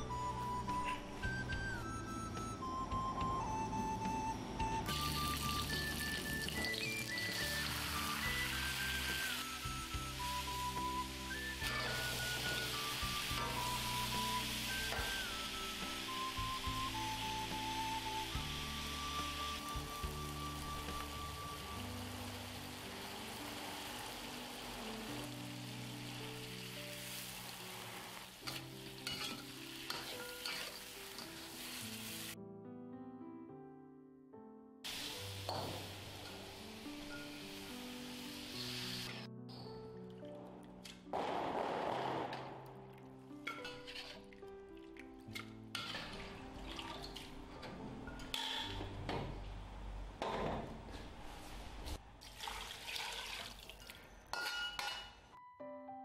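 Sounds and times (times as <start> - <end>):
chicken sizzling in oil: 4.9 - 32.4, 34.9 - 39.2
metal spatula stirring in wok: 28.4 - 31.5, 43.5 - 44.3, 45.7 - 46.2.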